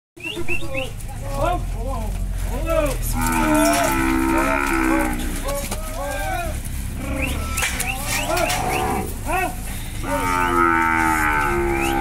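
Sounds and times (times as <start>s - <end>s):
steers bawling: 0.2s - 12.0s.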